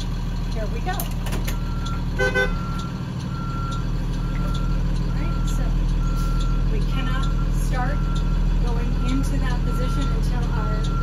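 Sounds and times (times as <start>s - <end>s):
bus backup alarm beeping: 0.0s - 11.0s
bus engine running: 0.0s - 11.0s.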